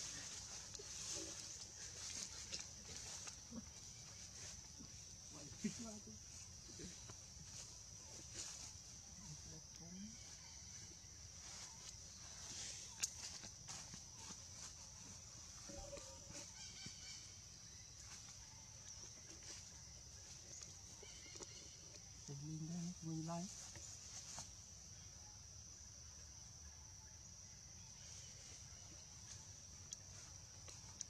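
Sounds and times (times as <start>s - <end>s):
faint animal calls: 14.2s - 22.3s.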